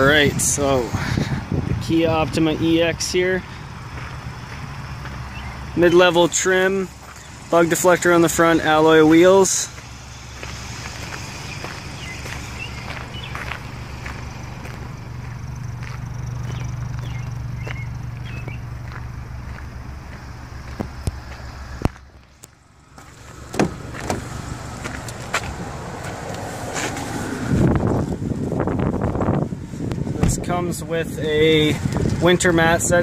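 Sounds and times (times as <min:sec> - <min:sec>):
footsteps: 0:03.4 - 0:05.3, 0:06.9 - 0:07.4, 0:09.6 - 0:17.1, 0:17.7 - 0:27.1
knocks and heavy thumps: 0:23.4 - 0:25.7.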